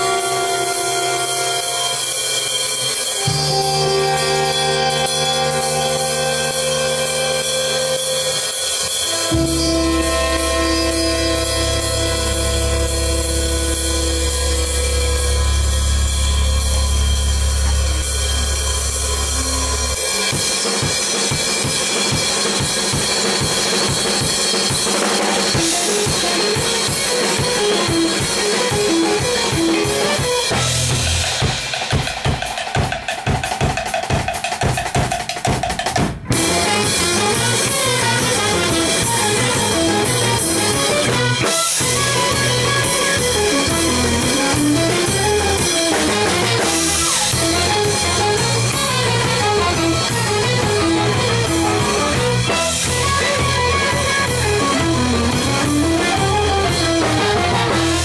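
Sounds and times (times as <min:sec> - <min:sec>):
short detached pitched notes: 0:00.0 - 0:21.6, 0:36.3 - 0:58.0
held chords: 0:00.0 - 0:32.0, 0:36.3 - 0:58.0
drum kit fast strokes: 0:00.0 - 0:58.0
sustained low bass note: 0:09.3 - 0:20.2.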